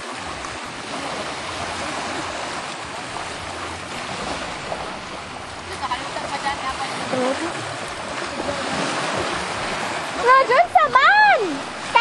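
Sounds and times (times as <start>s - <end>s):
small waves washing onto sand: 0.0s - 12.0s.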